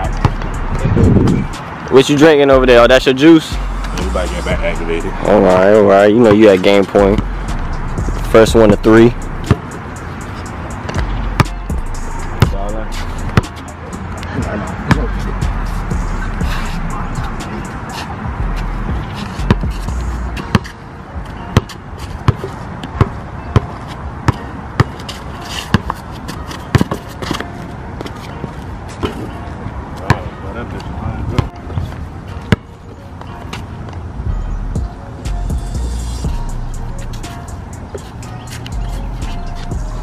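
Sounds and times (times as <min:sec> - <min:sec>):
background music: 0:00.0 - 0:22.6, 0:31.4 - 0:40.0
basketball bouncing on asphalt: 0:00.1 - 0:01.4, 0:07.1 - 0:07.4, 0:09.4 - 0:09.8, 0:10.8 - 0:12.7, 0:13.3 - 0:13.6, 0:14.8 - 0:15.7, 0:18.4 - 0:28.2, 0:30.0 - 0:30.3, 0:31.3 - 0:33.6.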